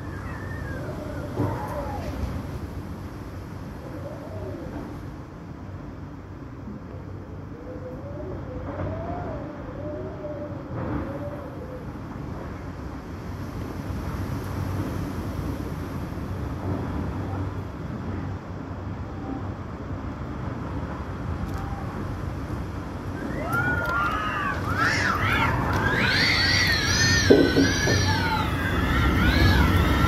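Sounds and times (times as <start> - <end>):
strong gusting wind: 0.0 - 30.0
rain: 19.9 - 30.0.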